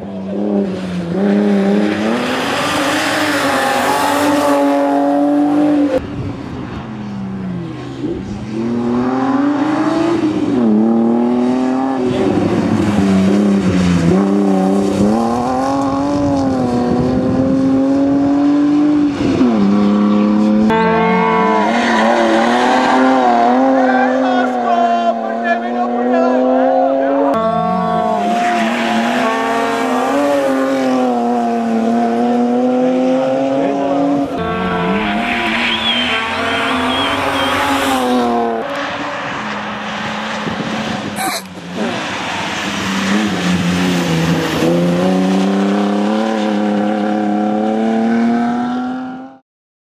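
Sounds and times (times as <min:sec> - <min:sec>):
rally car engine revving: 0:00.0 - 0:49.4.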